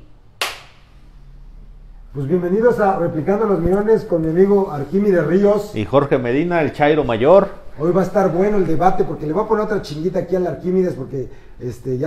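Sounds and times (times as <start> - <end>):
sharp clap with ring: 0.4 - 0.9.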